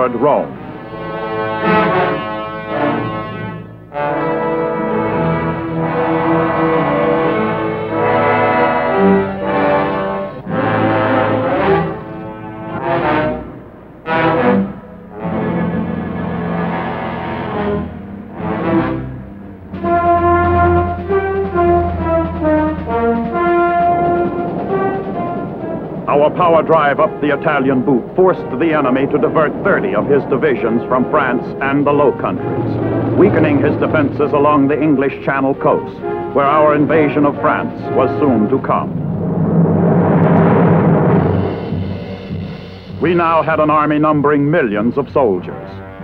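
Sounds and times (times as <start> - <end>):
orchestral music led by brass: 0.0 - 46.0.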